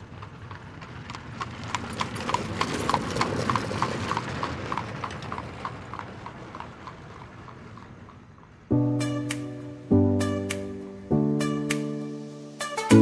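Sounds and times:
horse hoofbeats: 0.0 - 9.3.

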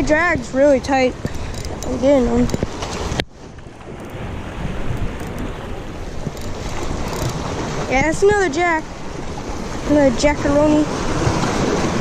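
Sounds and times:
small waves washing against rocks: 0.0 - 12.0
wind buffeting microphone: 0.0 - 12.0.

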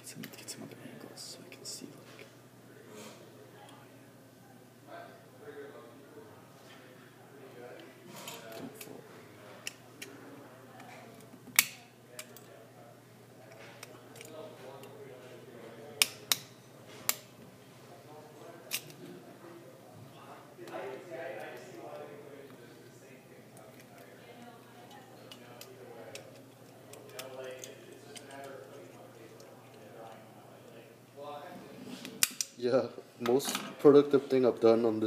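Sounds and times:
whispered speech: 0.0 - 11.3.

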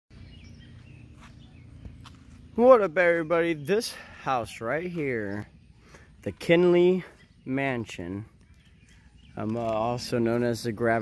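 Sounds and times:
faint bird chirps: 0.1 - 10.2.

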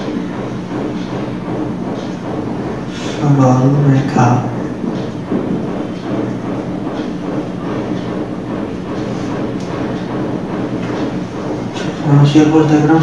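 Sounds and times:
mechanical hum: 0.0 - 13.0.

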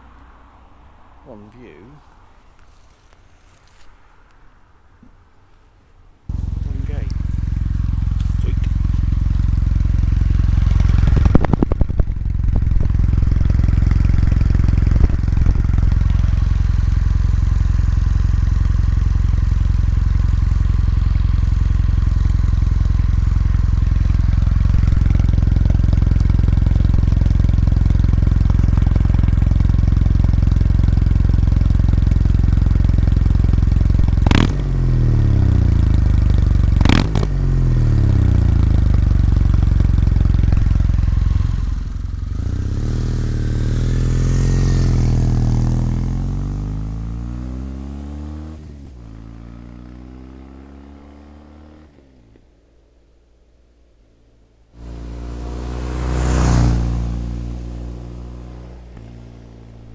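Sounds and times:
motorcycle engine idling: 6.3 - 47.0
engine throttle blips: 6.3 - 47.3, 54.8 - 59.9.

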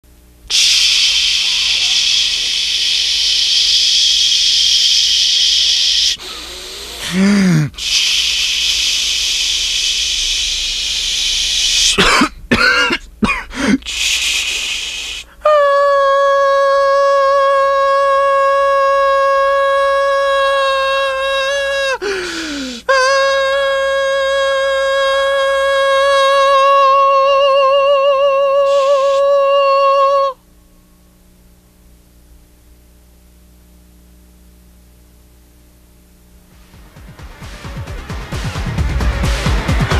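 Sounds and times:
tv static hiss: 0.2 - 15.4, 30.4 - 37.2.

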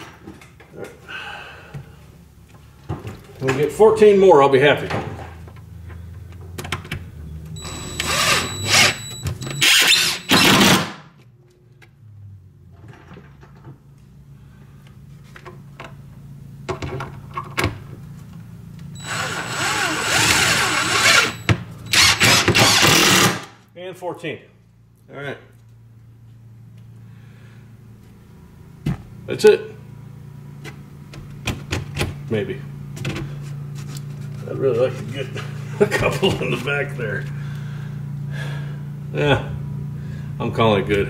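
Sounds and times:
cordless drill driving screws: 7.6 - 10.8, 19.0 - 23.5.

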